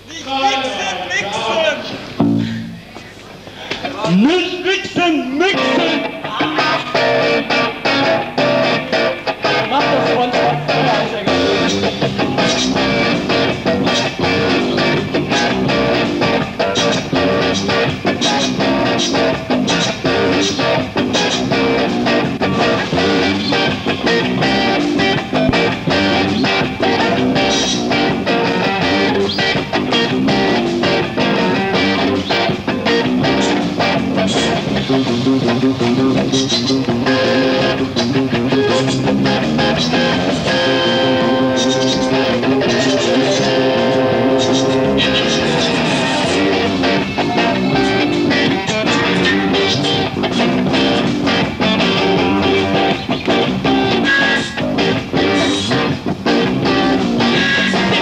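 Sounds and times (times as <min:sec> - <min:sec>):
electric guitar: 0:01.9 - 0:04.2, 0:04.9 - 0:58.0
rock band playing live: 0:01.9 - 0:04.2, 0:05.4 - 0:58.0
electric bass: 0:02.1 - 0:02.9, 0:06.7 - 0:58.0
steady driving drum beat: 0:11.2 - 0:54.0.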